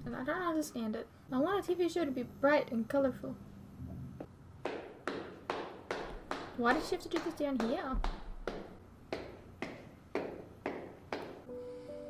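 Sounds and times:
soft music with held notes: 11.5 - 12.0.

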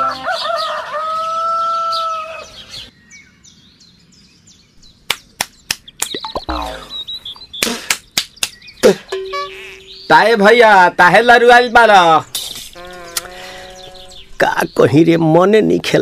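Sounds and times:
held bird call: 6.0 - 10.5, 12.2 - 15.0.

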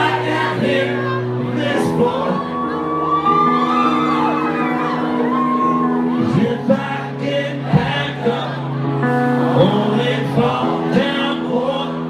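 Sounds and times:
electric guitar: 0.0 - 12.0
live rock band playing: 0.0 - 12.0
crowd shouting and whooping: 0.2 - 6.8.

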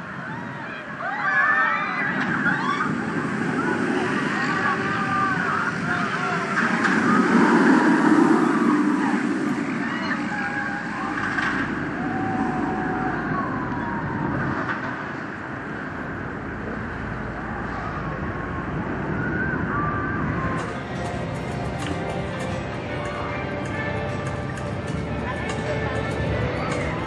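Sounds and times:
roller coaster rumbling roar: 0.0 - 27.0.

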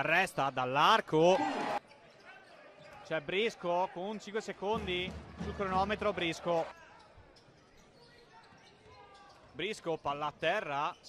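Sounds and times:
arena crowd noise: 1.0 - 9.9.

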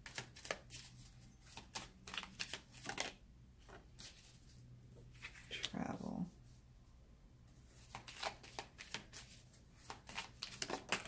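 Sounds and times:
cards being shuffled: 0.0 - 4.4, 7.8 - 11.0.

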